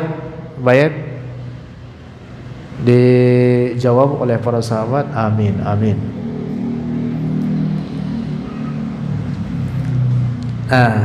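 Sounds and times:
man speaking through microphone: 0:00.0 - 0:01.3, 0:02.8 - 0:06.2.

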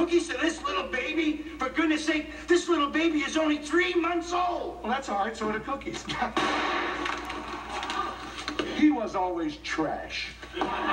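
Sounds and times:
cream pie hitting face: 0:06.2 - 0:08.0.

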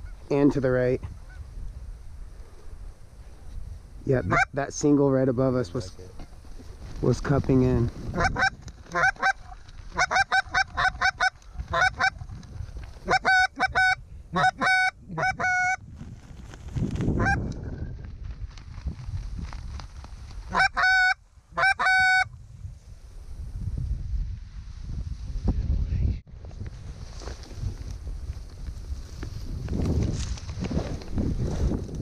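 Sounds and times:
goose honks and clucks: 0:08.2 - 0:12.2, 0:13.0 - 0:15.8, 0:20.5 - 0:22.3.

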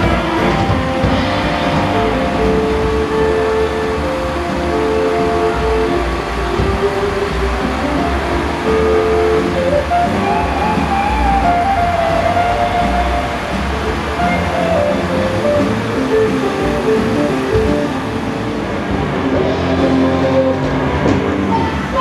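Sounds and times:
electric guitar long notes: 0:00.0 - 0:22.0
live rock band playing: 0:00.0 - 0:22.0
low rumble of street traffic: 0:00.0 - 0:22.0.

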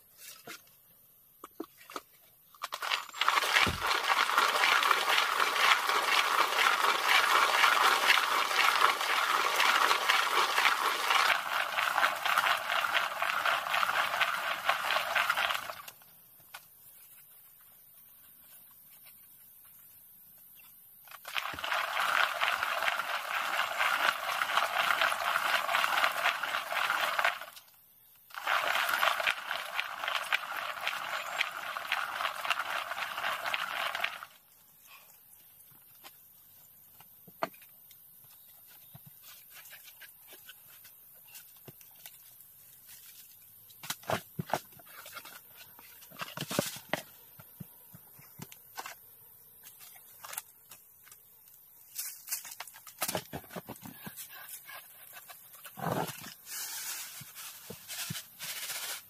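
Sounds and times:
rice mill grinding: 0:02.6 - 0:16.0, 0:21.2 - 0:27.7, 0:28.3 - 0:34.4.

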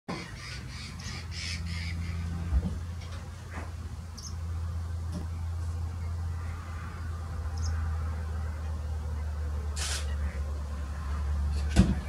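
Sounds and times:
bird giving harsh raspy calls: 0:00.1 - 0:02.4
steady low hum: 0:00.1 - 0:12.0.

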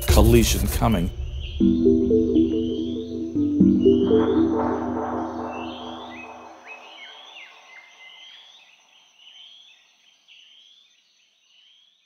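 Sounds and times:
music bed: 0:00.0 - 0:06.8.

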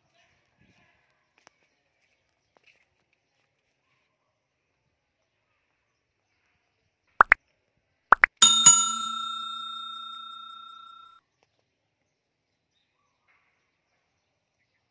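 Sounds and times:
bright bell ding: 0:08.2 - 0:11.1.

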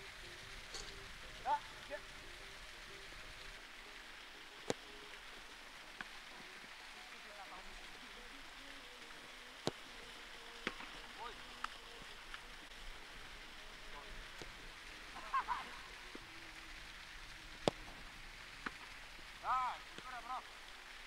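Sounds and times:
outdoor hush: 0:00.0 - 0:21.0
distant shout: 0:01.4 - 0:02.2.

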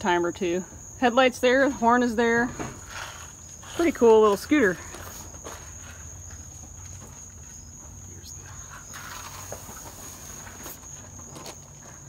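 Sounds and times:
crickets chirring: 0:00.0 - 0:12.0
faint footsteps: 0:01.6 - 0:12.0.

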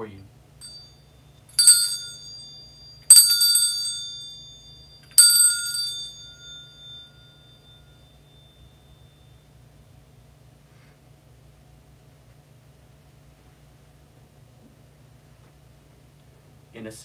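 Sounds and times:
altar bells ringing: 0:00.6 - 0:09.5.

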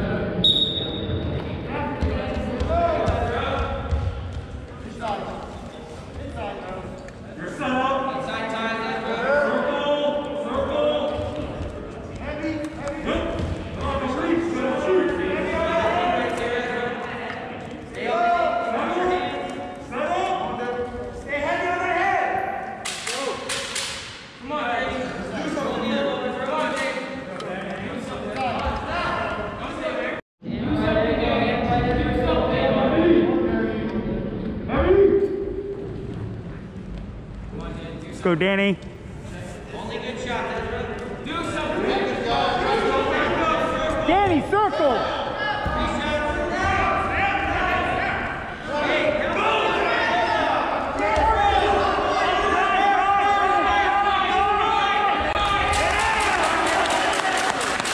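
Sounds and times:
shouts echoing in a gym: 0:00.0 - 0:36.7, 0:37.5 - 0:57.9.

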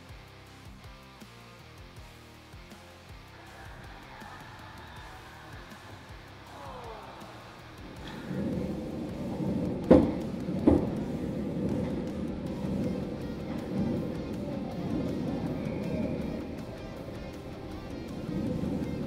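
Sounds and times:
background music: 0:00.0 - 0:19.0
sharp cracks: 0:02.7 - 0:19.0
ice hockey play: 0:03.0 - 0:19.0.

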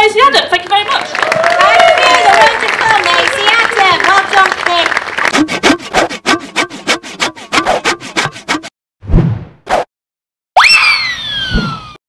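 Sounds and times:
cartoon falling whistle: 0:10.6 - 0:12.0.

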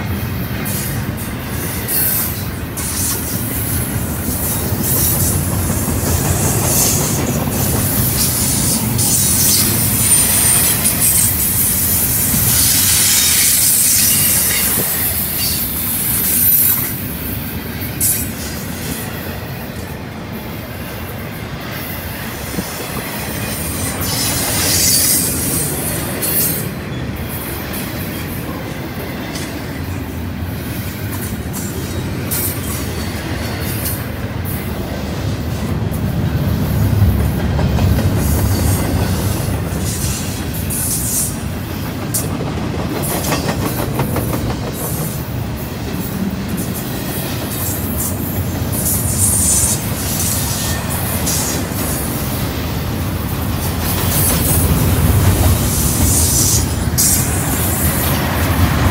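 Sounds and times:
freight train wheels rumbling: 0:00.0 - 0:58.9.

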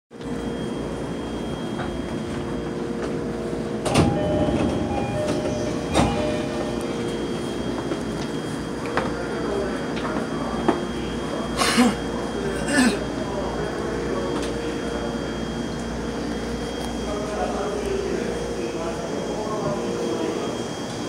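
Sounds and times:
train carriage rumble and hum: 0:00.1 - 0:21.0.

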